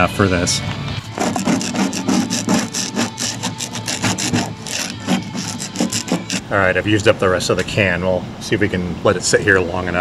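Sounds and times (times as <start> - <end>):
scraper scraping paint off metal: 1.1 - 6.6.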